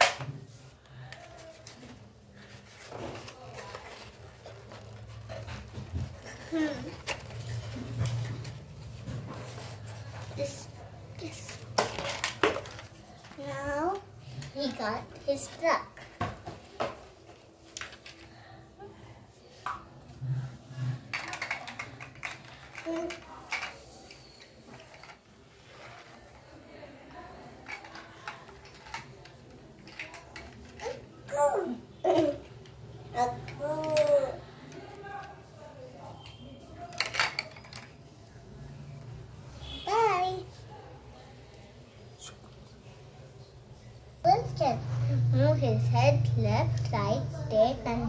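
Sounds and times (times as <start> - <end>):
plastic toy clicking and rattling: 11.2 - 16.1, 17.3 - 18.3, 21.0 - 26.3, 27.3 - 31.0, 33.2 - 35.4, 36.2 - 38.0
plastic toy parts clicking: 21.1 - 24.2, 27.6 - 30.9, 36.9 - 37.9.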